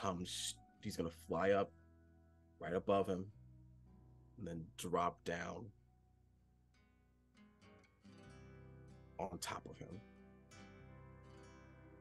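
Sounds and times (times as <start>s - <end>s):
plucked acoustic guitar: 6.7s - 12.0s.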